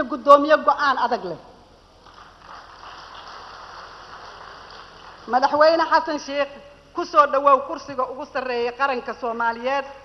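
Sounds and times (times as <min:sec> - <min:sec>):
large room background hiss: 0:00.0 - 0:10.0.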